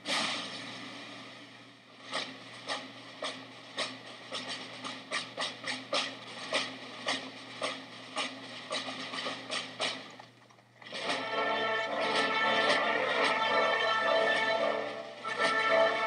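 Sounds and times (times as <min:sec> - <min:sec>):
sharp clacks and taps: 0:02.1 - 0:11.2.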